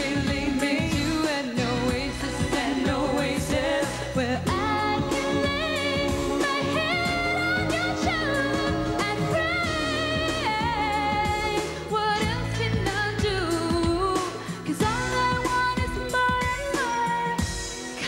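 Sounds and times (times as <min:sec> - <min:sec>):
instrumental backing: 0:00.0 - 0:18.0
woman singing into microphone: 0:00.0 - 0:18.0.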